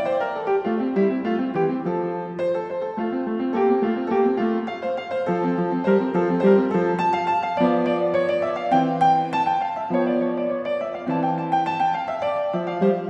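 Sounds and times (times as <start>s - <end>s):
solo piano classical piece: 0.0s - 13.0s.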